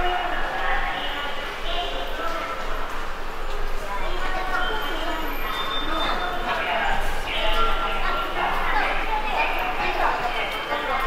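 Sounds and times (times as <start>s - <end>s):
voices of passers-by: 0.0s - 11.0s.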